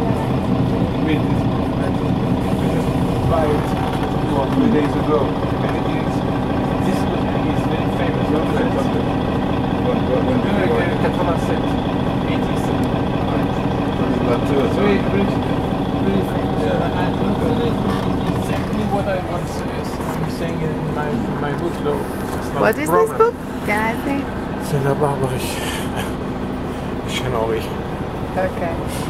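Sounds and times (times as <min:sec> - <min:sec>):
bus engine hum: 0:00.0 - 0:29.0
passengers talking: 0:00.0 - 0:29.0.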